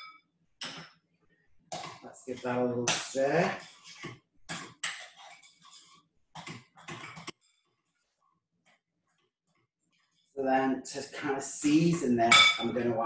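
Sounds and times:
mixture squelching in a bowl: 1.8s - 8.2s, 9.0s - 10.4s.

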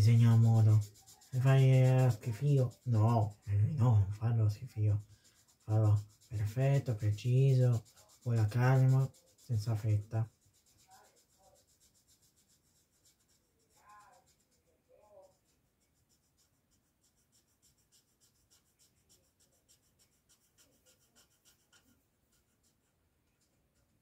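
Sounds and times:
marker scratching on wood: 0.0s - 24.0s.

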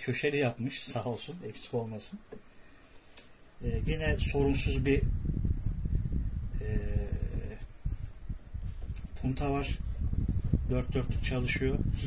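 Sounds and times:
man saying eh: 6.6s - 7.6s.

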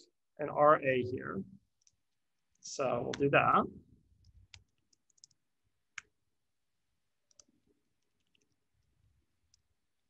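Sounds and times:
computer keyboard keystrokes: 4.2s - 6.1s, 7.3s - 7.5s.

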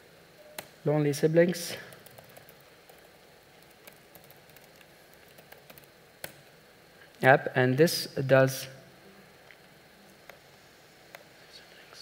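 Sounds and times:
room tone hiss: 0.0s - 12.0s
laptop keys typing: 1.8s - 6.4s.

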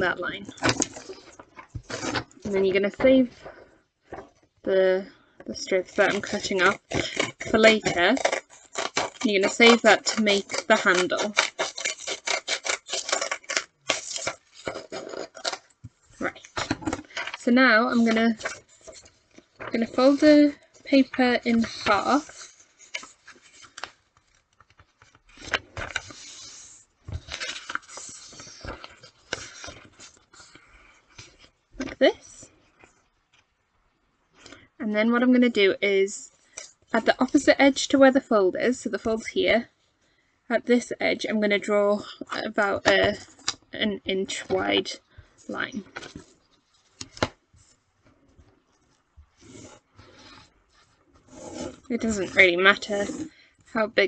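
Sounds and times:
paper rustling and folding: 5.8s - 33.5s, 44.3s - 53.4s
pen scratching along ruler: 51.3s - 53.3s.

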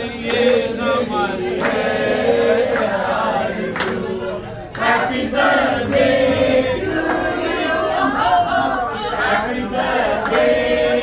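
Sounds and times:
group singing in chorus: 0.0s - 11.0s
hand claps: 0.2s - 0.8s, 1.5s - 3.0s, 3.7s - 4.1s, 9.2s - 10.7s.

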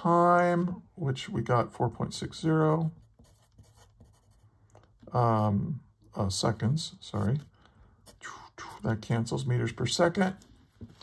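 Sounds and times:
pencil scratching on paper: 2.8s - 4.6s.

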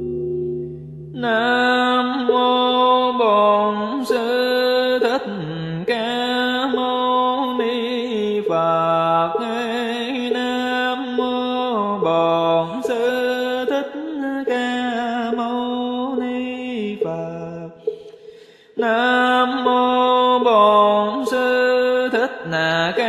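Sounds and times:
melodic sutra chanting: 0.0s - 18.1s, 18.8s - 23.0s.

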